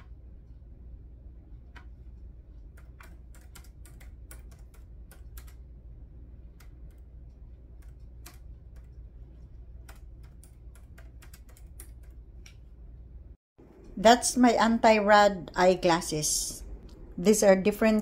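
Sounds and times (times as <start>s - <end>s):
low steady hum: 0.0s - 18.0s
laptop keyboard typing: 1.7s - 5.8s, 6.4s - 12.6s.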